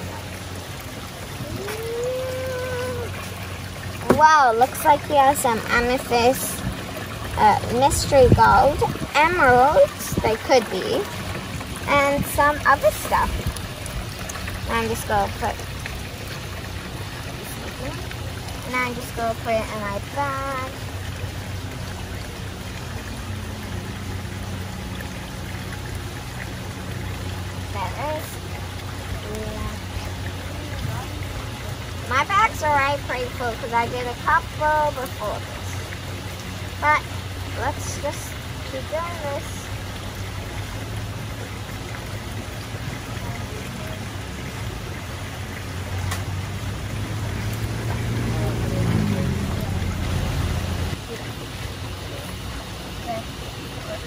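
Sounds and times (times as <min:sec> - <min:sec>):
low steady hum: 0:00.0 - 0:54.0
water running through trough: 0:00.0 - 0:54.0
rising hum: 0:45.7 - 0:51.0.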